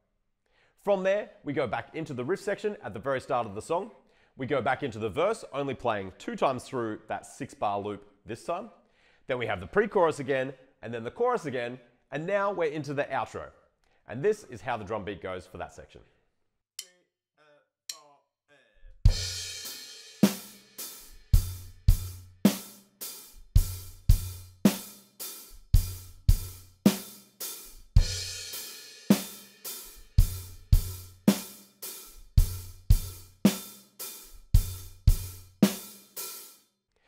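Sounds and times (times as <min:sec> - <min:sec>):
drum kit rock beat: 0:19.0 - 0:36.6.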